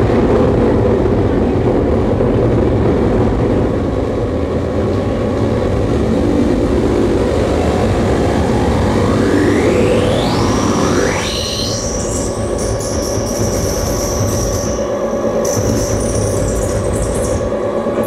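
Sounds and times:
harsh rumbling noise: 0.0 - 18.0
high whine: 0.0 - 18.0
sweeping pitched tones: 5.4 - 18.0
choppy stuttering highs: 6.2 - 18.0.

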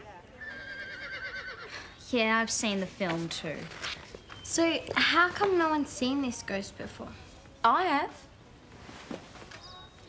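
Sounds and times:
horse whinny: 0.4 - 1.7.

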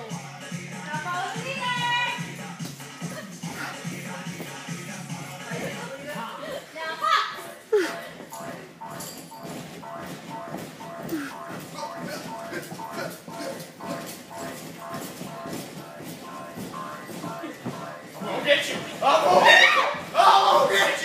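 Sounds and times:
background music with steady beat: 0.0 - 21.0
children shouting in gym hall: 19.2 - 21.0.

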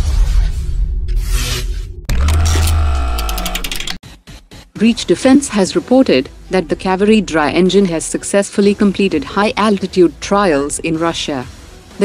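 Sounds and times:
glitchy clicks: 2.1 - 4.0.

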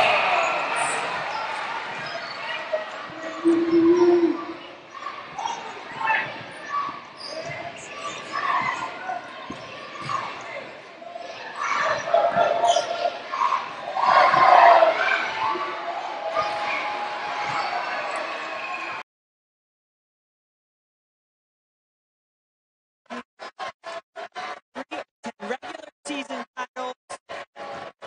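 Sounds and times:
voices: 0.0 - 19.0, 24.4 - 27.9.

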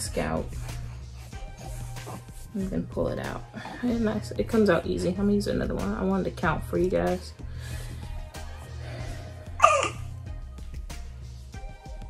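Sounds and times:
soft background music: 0.0 - 12.0
infant crying: 9.6 - 10.0.

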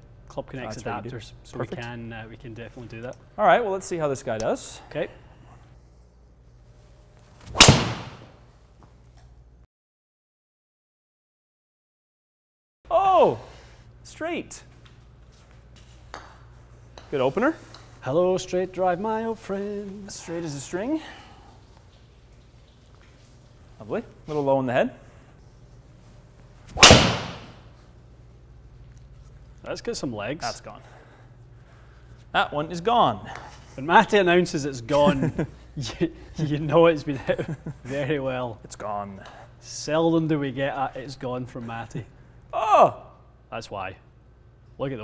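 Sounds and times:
golf club striking ball: 7.5 - 8.3, 26.8 - 27.6.

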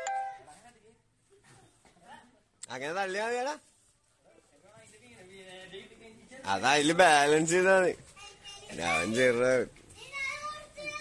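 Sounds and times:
bell-like chime: 0.0 - 0.5.

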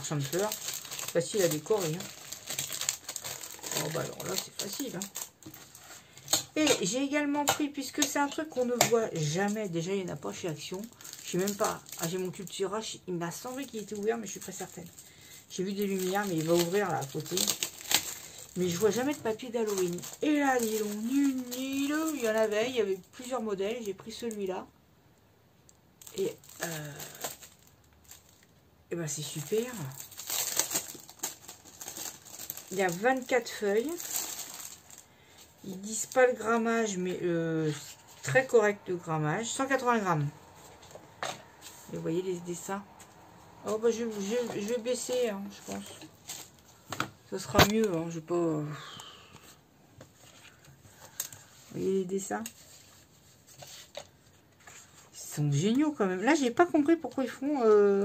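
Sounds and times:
paper sheets rustling: 0.0 - 6.2, 29.3 - 35.0.

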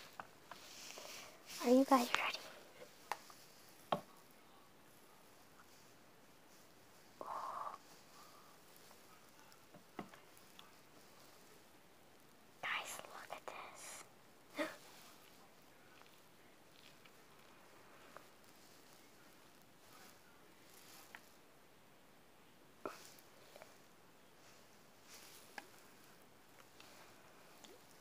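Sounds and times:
faint whispering: 0.0 - 11.8, 12.5 - 21.4, 22.8 - 28.0
soft voiced sound: 0.0 - 11.9, 12.5 - 21.6.

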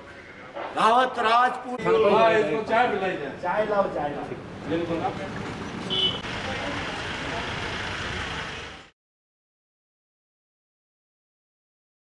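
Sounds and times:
traffic running: 1.8 - 8.9
people talking: 6.3 - 8.8.

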